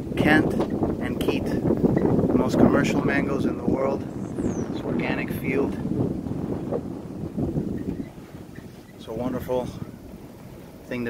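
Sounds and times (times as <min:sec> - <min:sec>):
wind buffeting phone microphone: 0:00.0 - 0:11.0.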